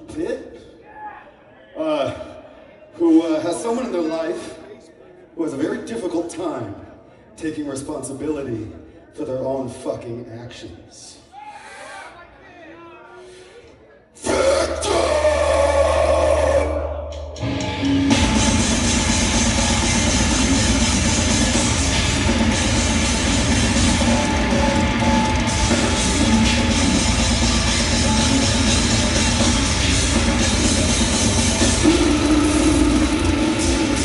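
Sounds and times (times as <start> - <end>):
faint crowd shouts: 14.1 - 18.4
heavy metal band playing: 14.2 - 34.0.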